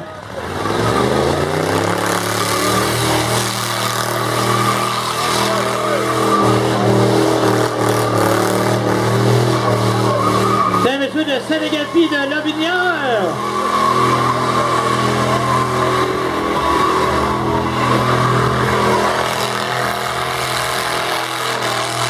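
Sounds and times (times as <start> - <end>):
car engine revving: 0.0 - 22.0
tyres spinning on pavement: 0.0 - 22.0.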